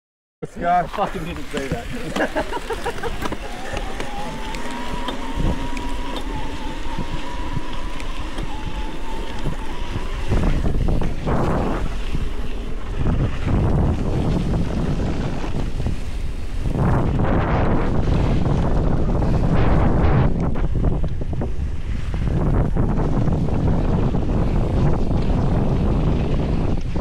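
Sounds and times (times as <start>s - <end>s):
thin steady whine: 0.4s - 25.0s
wind buffeting microphone: 0.6s - 27.0s
bike tyres rolling over dirt: 0.8s - 21.4s.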